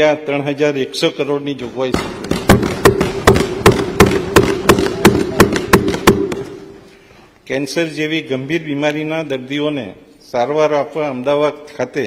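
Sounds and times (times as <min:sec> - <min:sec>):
people thumping desks: 0:01.9 - 0:06.9.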